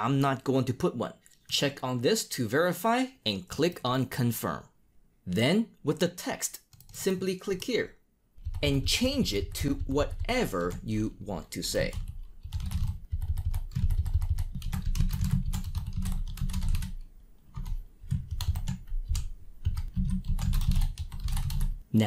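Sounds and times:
computer keyboard typing: 6.6s - 7.0s, 8.4s - 10.9s, 11.7s - 21.8s.

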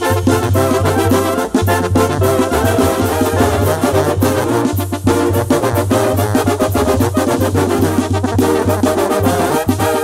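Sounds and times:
brass band music: 0.0s - 10.0s.

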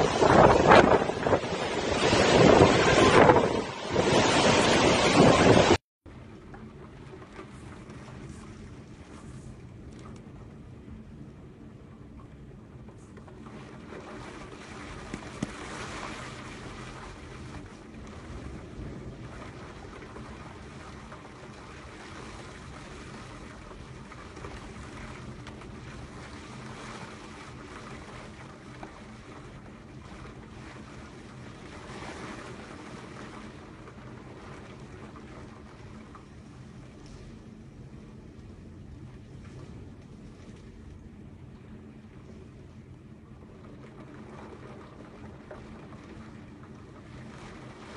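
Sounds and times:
wind buffeting microphone: 0.0s - 5.8s
waves and surf: 0.0s - 47.9s.

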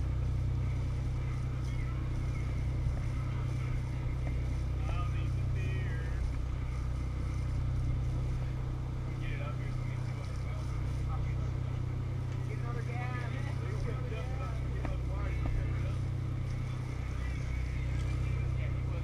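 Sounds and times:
boat engines humming: 0.0s - 19.0s.

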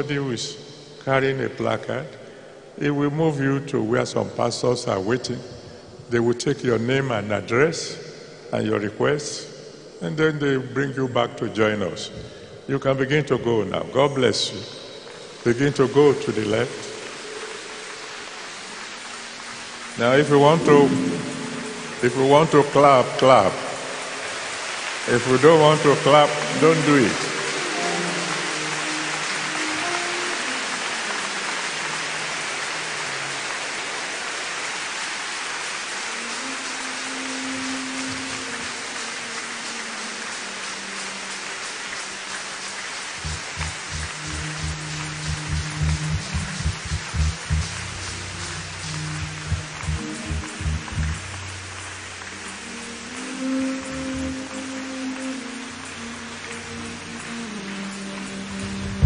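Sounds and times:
church band music with bass: 0.0s - 2.1s, 20.0s - 24.0s, 25.0s - 30.9s, 43.2s - 55.2s, 58.6s - 59.0s
congregation applauding: 15.1s - 59.0s.

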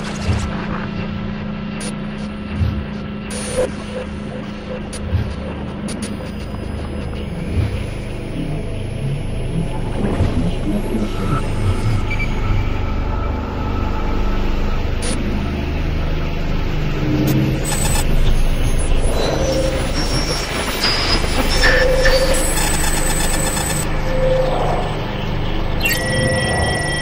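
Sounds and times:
synthetic sci-fi tones: 3.3s - 27.0s
chiming electronic tones: 25.7s - 27.0s.

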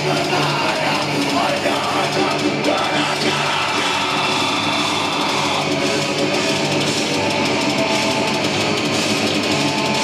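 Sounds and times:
distorted electric guitars: 0.0s - 10.0s
drums: 0.0s - 10.0s.

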